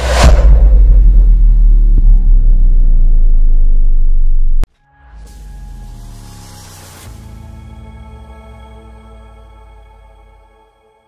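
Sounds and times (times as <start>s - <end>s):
deep bass rumble: 0.0s - 4.7s
impact: 0.0s - 4.7s.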